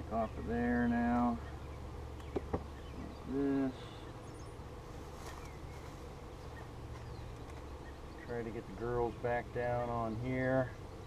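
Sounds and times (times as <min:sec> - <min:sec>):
honeybees buzzing: 0:00.0 - 0:11.0
light knocks: 0:02.2 - 0:02.7.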